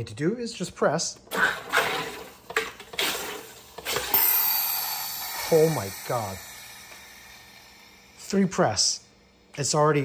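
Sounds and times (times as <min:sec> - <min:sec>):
water carbonator gas bursts: 0:01.3 - 0:09.6
loud high hiss of venting gas: 0:03.2 - 0:10.0.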